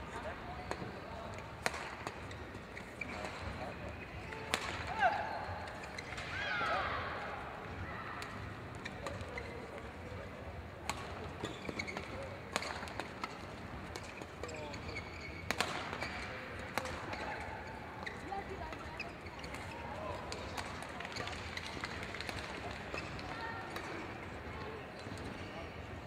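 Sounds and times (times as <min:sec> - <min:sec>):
murmur of voices: 0:00.0 - 0:26.0
shoes squeaking on court floor: 0:00.4 - 0:06.4, 0:07.7 - 0:25.8
racket striking shuttlecock: 0:04.3 - 0:05.0, 0:12.5 - 0:14.1, 0:15.5 - 0:17.2.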